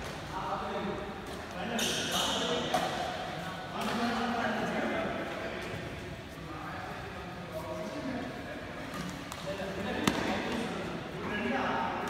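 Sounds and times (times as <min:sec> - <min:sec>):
voices in a hall: 0:00.0 - 0:12.0
racket hitting shuttlecock: 0:10.0 - 0:10.6.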